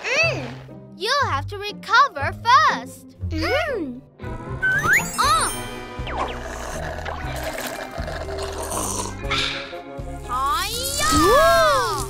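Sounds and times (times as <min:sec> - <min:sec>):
cartoon background music: 0:00.0 - 0:12.0
liquid pouring: 0:06.2 - 0:09.2.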